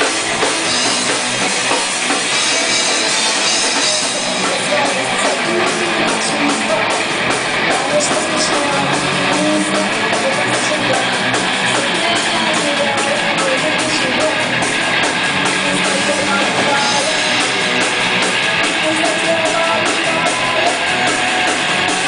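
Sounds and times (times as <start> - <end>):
bass guitar: 0.0 - 22.0
distorted electric guitars: 0.0 - 22.0
drum kit and cymbals: 0.0 - 22.0.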